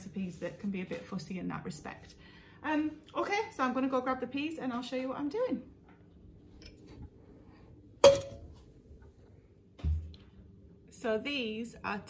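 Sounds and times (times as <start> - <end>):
faint steady hum: 1.5 - 12.0.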